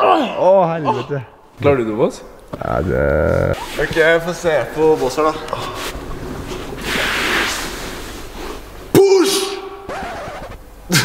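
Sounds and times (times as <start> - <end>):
man exhaling with effort: 2.6 - 3.6.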